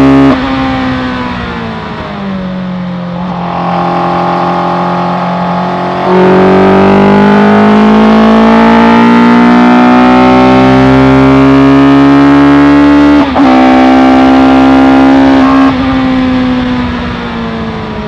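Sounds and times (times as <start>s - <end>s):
motorcycle engine accelerating: 0.0s - 18.0s.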